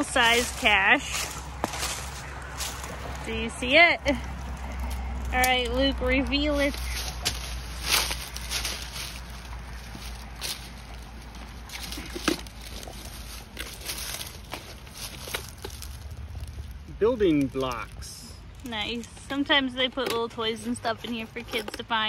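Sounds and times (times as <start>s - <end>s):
dry leaves and bark rustling: 0.0s - 19.7s.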